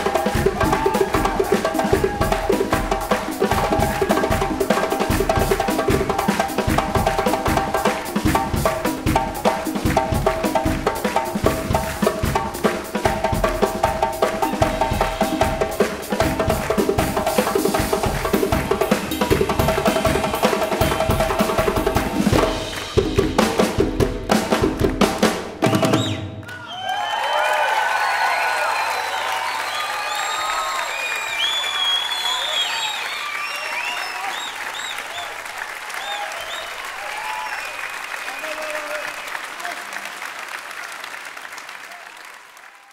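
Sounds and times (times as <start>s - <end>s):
drum kit and hand drums: 0.0s - 26.4s
audience applauding and cheering: 0.0s - 42.9s.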